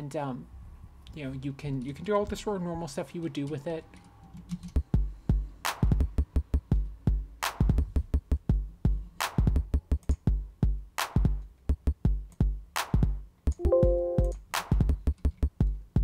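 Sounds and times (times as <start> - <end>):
electronic drum pattern: 4.9 - 15.0.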